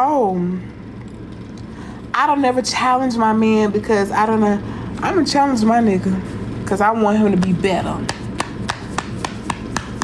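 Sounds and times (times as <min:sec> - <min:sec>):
sharp taps or claps: 0:08.1 - 0:10.0.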